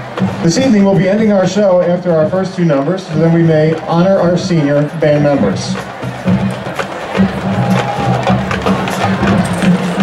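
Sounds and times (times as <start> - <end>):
marching band music: 0.0 - 10.0
sharp clicking percussion: 0.1 - 10.0.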